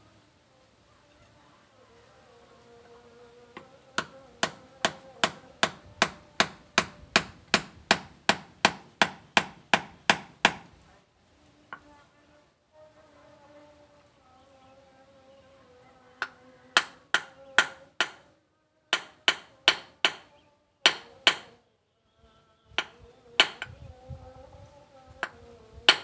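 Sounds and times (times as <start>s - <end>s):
hammer striking metal on anvil: 20.9s - 21.5s, 22.8s - 23.7s.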